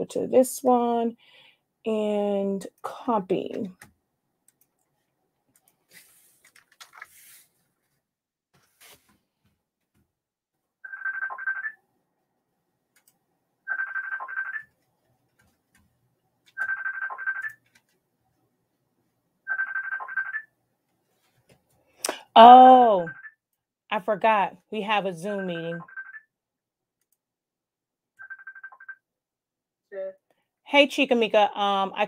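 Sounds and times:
phone ringing: 10.8s - 11.8s, 13.6s - 14.8s, 16.6s - 17.6s, 19.5s - 20.5s, 25.4s - 26.3s, 28.2s - 29.0s.

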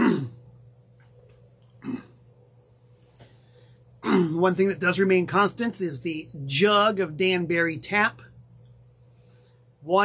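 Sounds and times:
man's throaty grunt: 0.0s - 0.3s, 4.0s - 4.4s.

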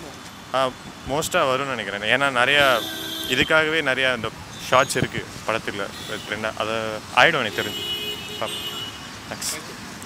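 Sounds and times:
street traffic: 0.0s - 10.0s
man speaking: 0.6s - 9.8s.

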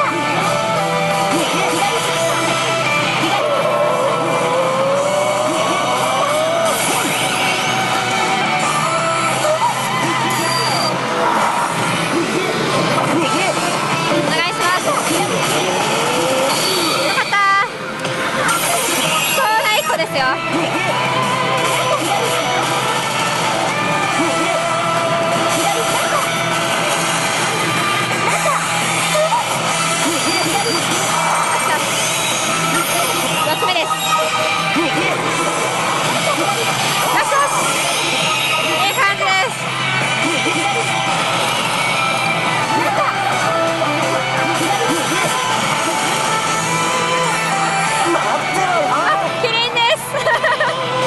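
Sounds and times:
slot machine electronic effects: 0.0s - 50.6s
pachinko parlor din: 0.0s - 51.0s
bright electronic tone sequence: 28.7s - 47.6s.

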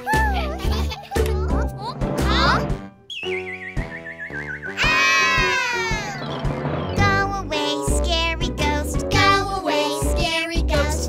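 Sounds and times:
bouncy cartoon music: 0.0s - 11.0s
children crying out together: 4.8s - 6.2s
children shouting happily: 4.8s - 6.2s.

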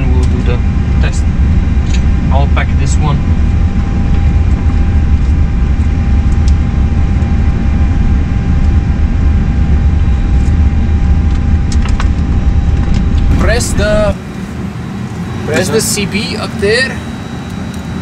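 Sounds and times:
air-handling rumble: 0.0s - 18.0s
thin steady hum: 0.0s - 18.0s.

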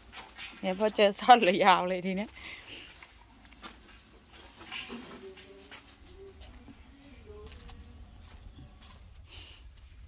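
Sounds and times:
footsteps on dry ground and straw: 0.0s - 10.0s.

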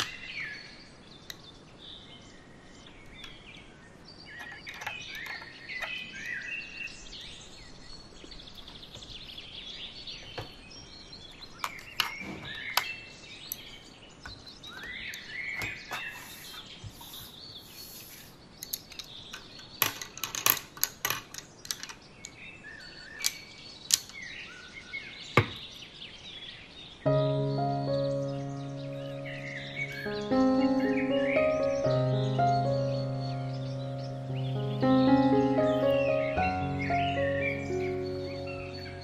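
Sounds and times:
birds chirping: 0.0s - 20.0s, 21.5s - 39.0s
gentle music: 27.1s - 39.0s.

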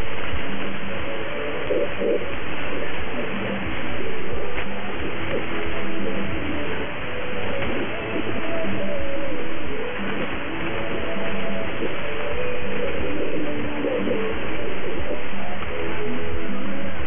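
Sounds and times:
music over radio: 0.0s - 17.0s
static hiss: 0.0s - 17.0s.

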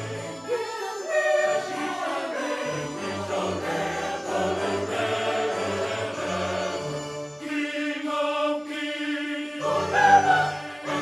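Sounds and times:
church choir singing in harmony: 0.0s - 11.0s.

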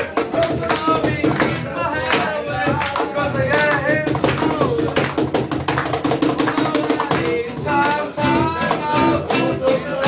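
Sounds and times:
cajon hand strokes: 0.0s - 10.0s
strummed acoustic guitar: 0.0s - 10.0s.

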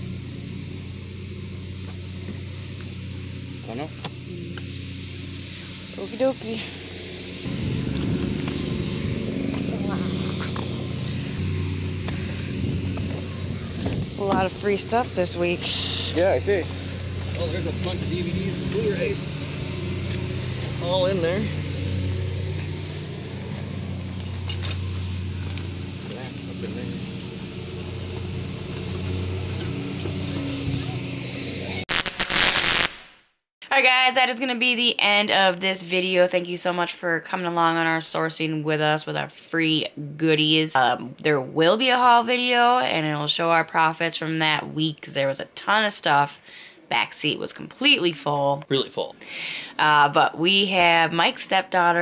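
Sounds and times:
motor engine rumbling: 0.0s - 32.8s
low hum: 0.0s - 33.2s
static-like crackling burst: 2.9s - 13.5s, 31.9s - 33.2s.

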